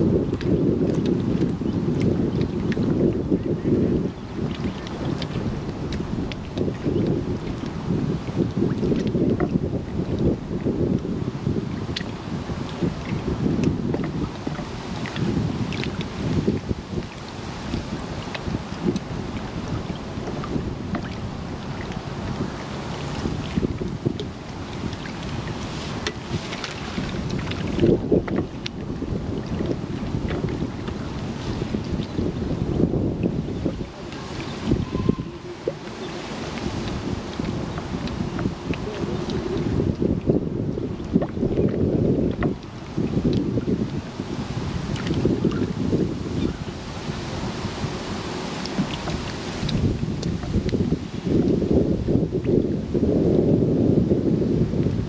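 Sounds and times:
water lapping: 0:00.0 - 0:53.1
wind buffeting microphone: 0:00.0 - 0:55.0.

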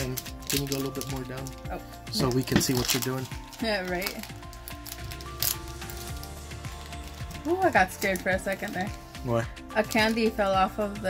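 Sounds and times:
foil wrapper crinkling and tearing: 0:00.0 - 0:09.1
background music: 0:00.0 - 0:11.0.

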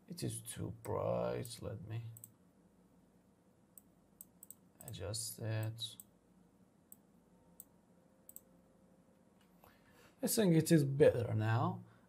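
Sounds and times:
faint computer mouse clicks: 0:03.8 - 0:05.0, 0:08.3 - 0:08.5.

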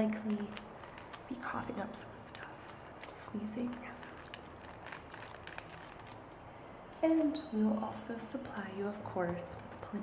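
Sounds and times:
plastic packet crinkling: 0:00.0 - 0:06.5
low hum of room fans: 0:00.0 - 0:10.0.

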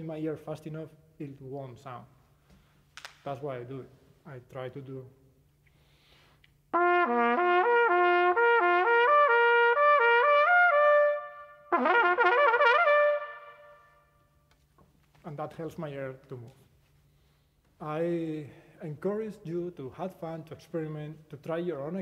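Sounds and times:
trumpet playing fast lip slurs: 0:06.8 - 0:13.6.

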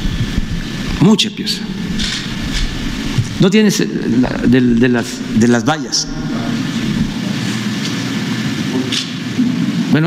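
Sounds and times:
steady rumbling noise: 0:00.0 - 0:08.8.

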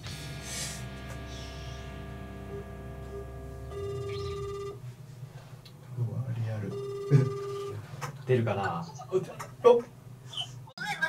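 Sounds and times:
phone ringback beeps: 0:03.7 - 0:04.8, 0:06.7 - 0:07.9.

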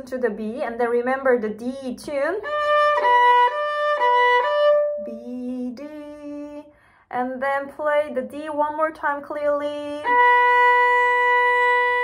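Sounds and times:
violin long bowed note: 0:02.4 - 0:06.4, 0:09.8 - 0:12.0.

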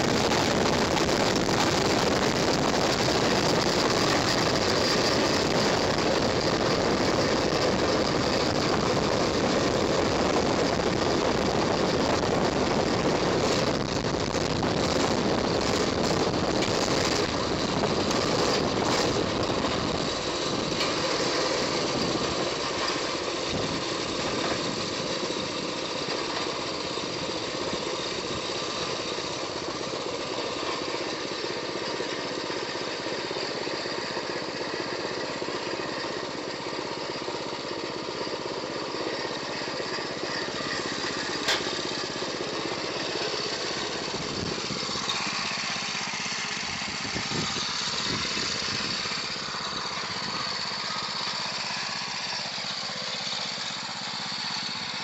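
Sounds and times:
small engine running: 0:00.0 - 0:55.0.

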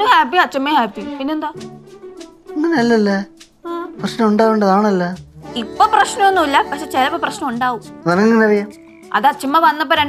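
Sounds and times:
person talking: 0:02.6 - 0:10.0.

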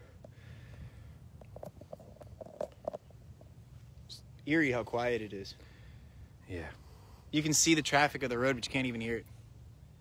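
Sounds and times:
soft ticks and rustles: 0:00.2 - 0:04.5.

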